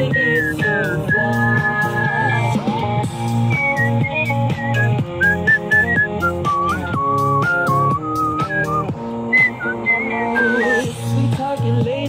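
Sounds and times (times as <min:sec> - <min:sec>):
person whistling a melody: 0:00.0 - 0:02.6, 0:03.4 - 0:11.1
recorded pop song: 0:00.0 - 0:12.0.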